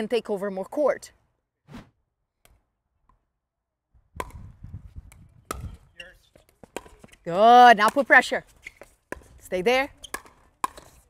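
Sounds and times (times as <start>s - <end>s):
paddles hitting plastic ball: 6.4s - 7.2s, 10.0s - 11.0s.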